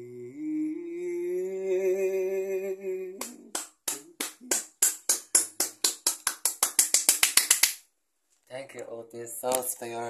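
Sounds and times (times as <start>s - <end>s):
hand claps: 3.2s - 7.8s.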